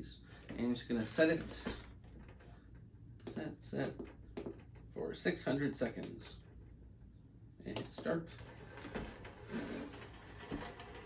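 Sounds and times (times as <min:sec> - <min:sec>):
ultrasonic cleaner humming: 0:08.4 - 0:11.0.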